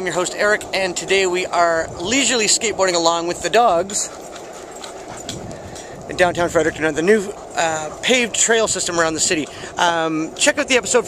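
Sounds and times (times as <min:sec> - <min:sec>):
dogs panting: 0:00.0 - 0:11.0
skateboard wheels rolling on asphalt: 0:00.0 - 0:11.0.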